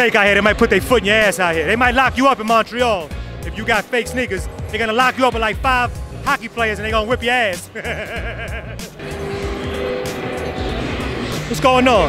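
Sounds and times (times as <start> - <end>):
music with held notes: 0.0 - 12.0
man laughing: 6.9 - 9.0.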